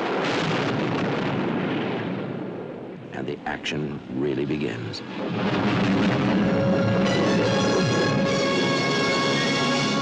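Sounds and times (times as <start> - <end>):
explosion blast: 0.0 - 3.0, 5.0 - 8.8.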